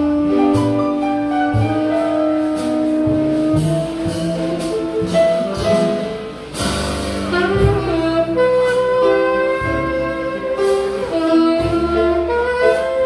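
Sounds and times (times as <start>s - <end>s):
tenor saxophone melody: 0.0s - 6.4s, 7.2s - 13.0s
walking bass: 0.0s - 13.0s.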